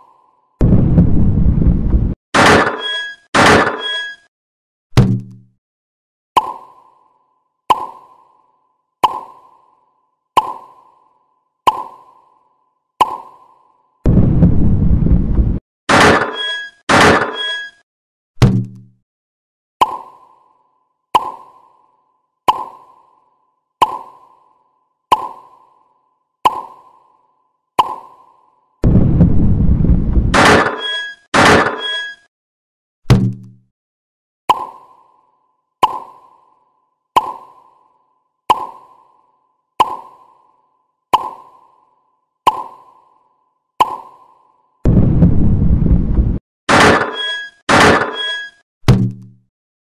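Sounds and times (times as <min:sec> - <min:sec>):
bright ringing hits: 0:46.8 - 0:48.6.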